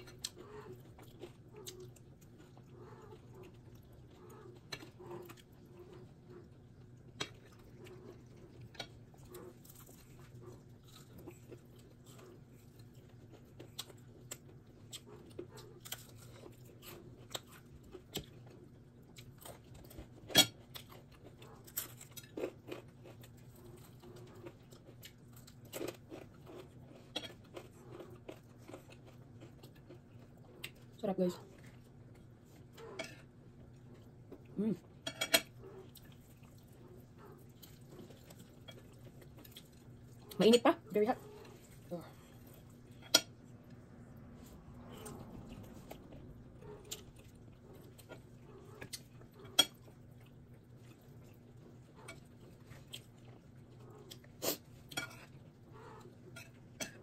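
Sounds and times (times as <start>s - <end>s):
chewing crispy fried chicken: 0.0s - 57.0s
faint steady low hum: 0.0s - 57.0s.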